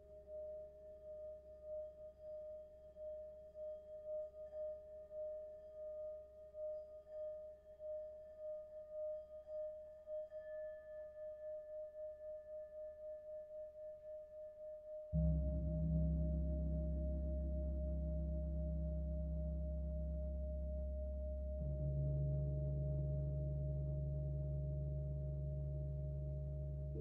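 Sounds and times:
singing bowl steady tone: 0.0s - 27.0s.

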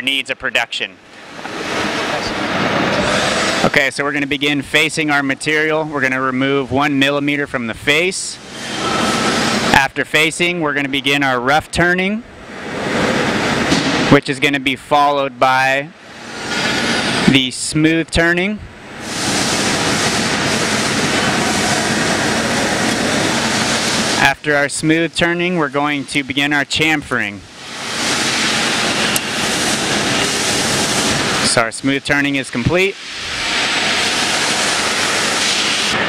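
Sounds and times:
metal lathe cutting hiss: 1.5s - 3.8s, 8.3s - 9.8s, 16.0s - 17.3s, 19.0s - 25.0s, 27.5s - 36.0s
lathe tool cutting steel hiss: 32.8s - 36.0s.

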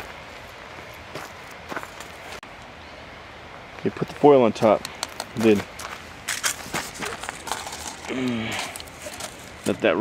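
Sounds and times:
aluminium foil crinkling: 6.4s - 9.8s.

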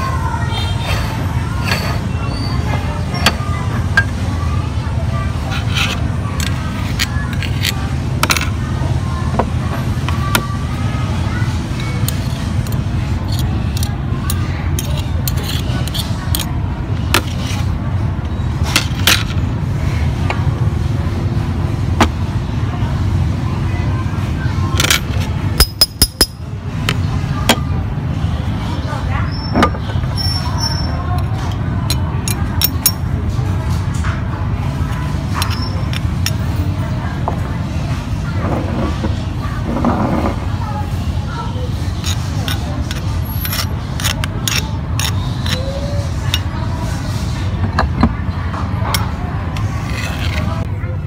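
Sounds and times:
metal spoon scraping steel plate: 5.5s - 8.4s, 11.8s - 16.5s, 41.9s - 46.5s, 49.0s - 50.7s.

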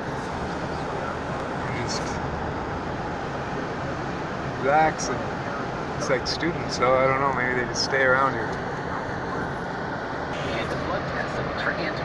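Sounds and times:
car driving road and engine noise: 0.0s - 12.0s.

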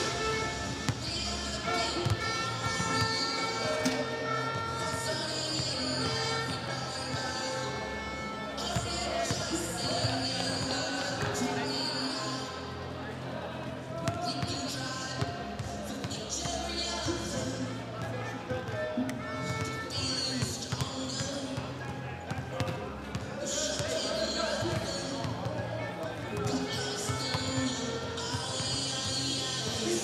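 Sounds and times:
pop music with vocals: 0.0s - 30.0s.

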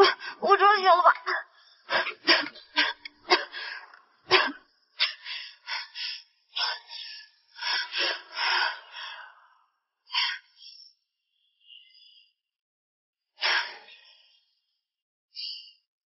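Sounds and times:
woman gasping and exhaling: 13.4s - 14.1s.

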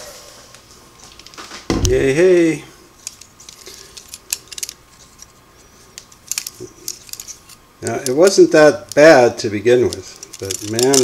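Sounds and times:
metallic clicks and rattles: 3.0s - 5.3s, 6.0s - 9.2s, 9.8s - 11.0s.

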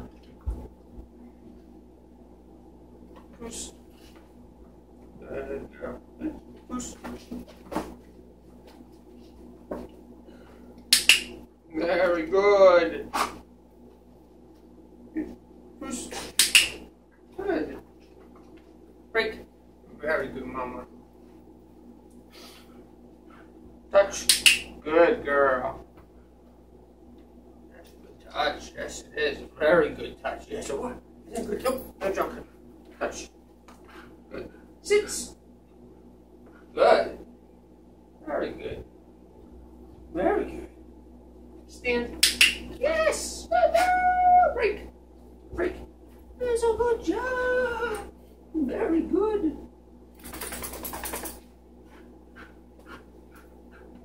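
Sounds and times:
dog paws clacking on perch: 50.2s - 51.5s.

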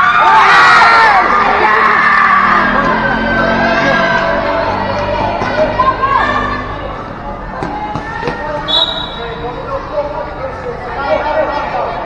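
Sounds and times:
spectators' voices and shouts: 0.0s - 12.0s
short high whistle: 8.7s - 9.4s.

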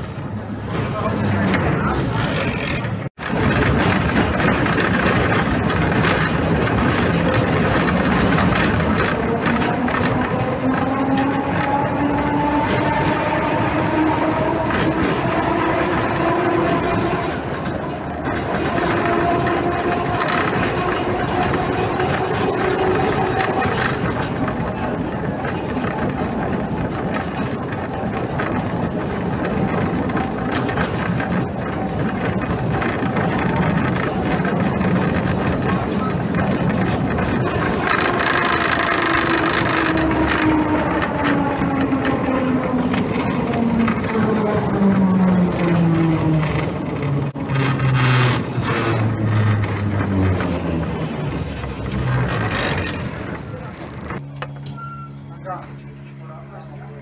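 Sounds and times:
traction motor whine: 0.0s - 57.0s
tram rumbling and rattling on rails: 0.0s - 57.0s.

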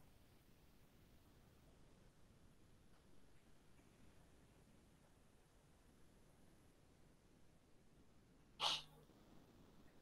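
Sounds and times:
short sneeze: 8.6s - 9.0s.

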